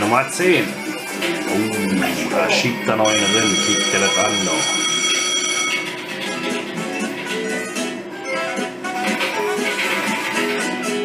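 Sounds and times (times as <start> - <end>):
slot machine music: 0.0 - 11.0
ringing chime: 3.0 - 6.0.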